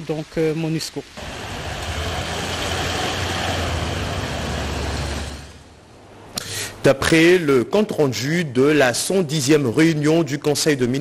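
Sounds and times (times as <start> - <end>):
road and wind noise: 1.0 - 6.9
car engine hum: 1.2 - 6.0.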